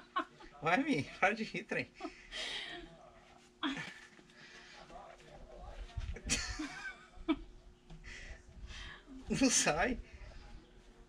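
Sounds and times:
quiet laughter: 0:00.0 - 0:04.3, 0:06.1 - 0:08.6.

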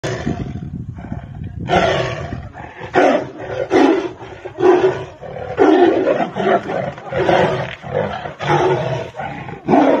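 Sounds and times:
tigers roaring: 0:00.0 - 0:10.0.

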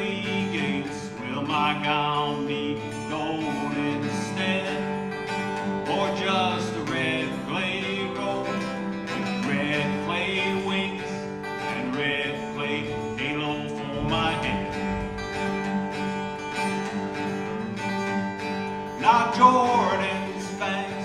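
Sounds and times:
acoustic guitar strumming: 0:00.0 - 0:21.0
wavering melody line: 0:12.5 - 0:21.0.

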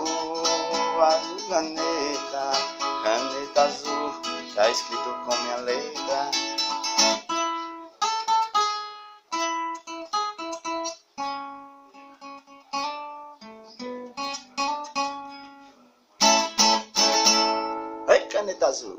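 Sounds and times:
acoustic guitar: 0:00.0 - 0:18.9.

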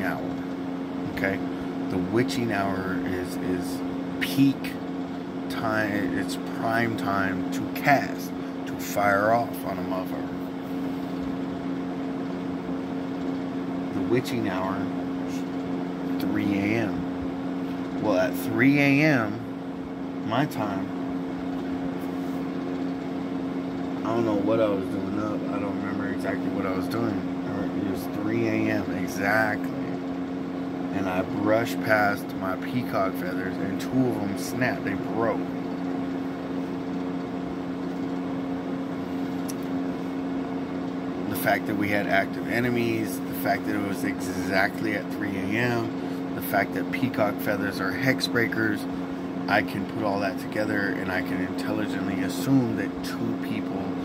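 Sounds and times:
low machine hum: 0:00.0 - 0:54.0.

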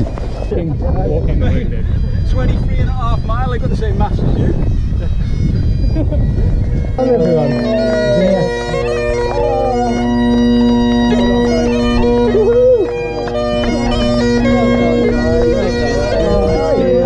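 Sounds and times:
wind on microphone: 0:00.0 - 0:09.3, 0:09.9 - 0:12.5, 0:13.6 - 0:17.0
bagpipes playing a tune: 0:00.0 - 0:17.0.

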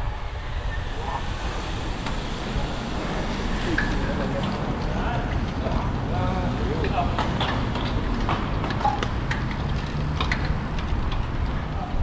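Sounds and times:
wind and road noise: 0:00.0 - 0:12.0
bicycle clicks: 0:06.8 - 0:11.6.

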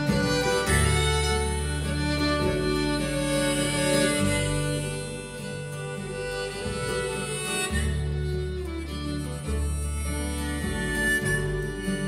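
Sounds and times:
acoustic guitar: 0:00.0 - 0:12.0
fiddle holding long notes: 0:00.0 - 0:12.0
mandolin: 0:00.0 - 0:12.0
upright bass low notes: 0:00.0 - 0:12.0.

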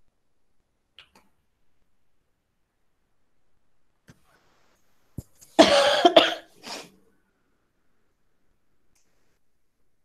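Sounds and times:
woman coughing: 0:05.6 - 0:06.6.

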